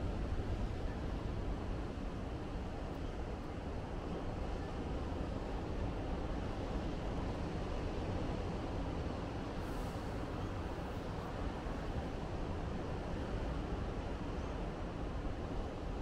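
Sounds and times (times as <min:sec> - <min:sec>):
distant ocean surf rumble: 0:00.0 - 0:16.0.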